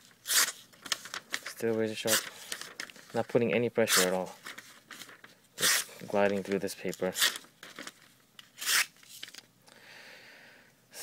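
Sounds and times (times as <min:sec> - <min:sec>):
knife slicing paper: 0:00.2 - 0:00.6, 0:08.6 - 0:09.0
paper handling ticks: 0:00.4 - 0:03.2.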